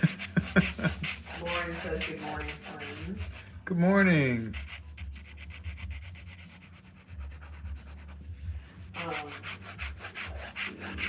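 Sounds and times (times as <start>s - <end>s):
pencil scratching on paper: 0.0s - 3.4s, 4.4s - 11.0s.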